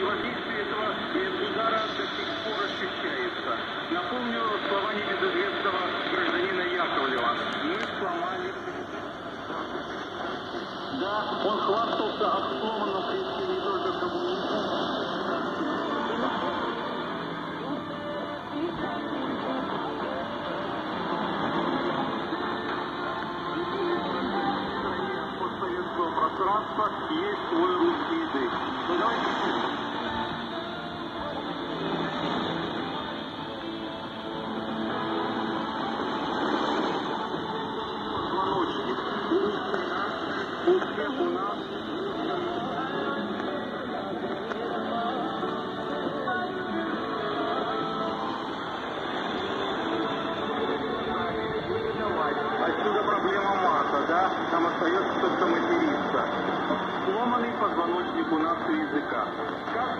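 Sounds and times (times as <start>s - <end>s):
faint radio station audio: 0.0s - 59.9s
radio static and hiss: 0.0s - 59.9s.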